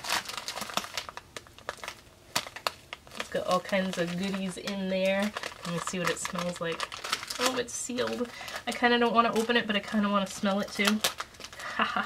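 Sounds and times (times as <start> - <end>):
plastic pouch crinkling: 0.0 - 12.0.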